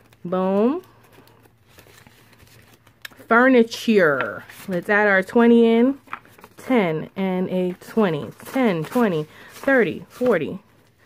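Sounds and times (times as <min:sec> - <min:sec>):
page turning: 0:00.0 - 0:03.3, 0:06.0 - 0:06.6, 0:07.7 - 0:10.8
paper rustling: 0:00.0 - 0:06.8, 0:07.6 - 0:11.0.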